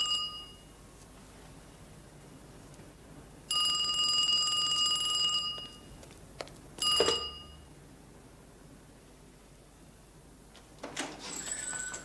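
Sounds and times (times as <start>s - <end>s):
telephone bell ringing: 0.0s - 0.7s, 3.5s - 5.9s, 6.8s - 7.6s, 11.2s - 12.0s
handset picked up clunk: 6.8s - 7.4s.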